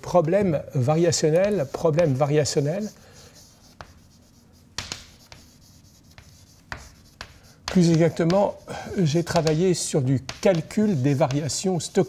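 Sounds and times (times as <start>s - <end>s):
chalk scraping on blackboard: 1.0s - 12.0s
chalk tapping on blackboard: 1.0s - 12.0s.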